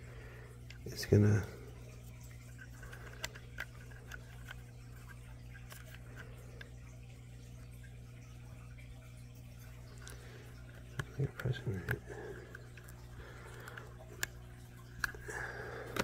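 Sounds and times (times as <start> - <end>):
low steady hum: 0.0 - 16.0
faint handling clicks: 2.2 - 6.8, 9.9 - 16.0.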